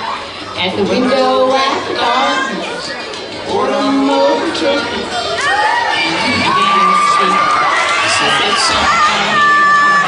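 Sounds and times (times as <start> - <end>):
children cheering and shouting: 0.0 - 10.0.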